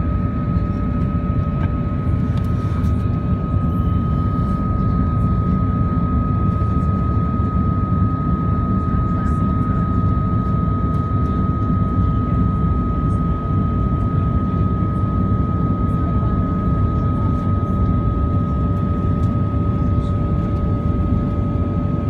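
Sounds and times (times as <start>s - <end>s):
jet engine rumble: 0.0s - 22.0s
thin steady whine: 0.0s - 22.0s.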